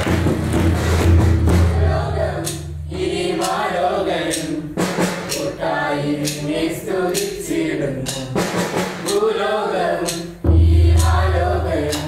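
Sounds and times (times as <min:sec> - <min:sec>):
clap and drum beat: 0:00.0 - 0:12.0
group singing a carol: 0:01.4 - 0:12.0.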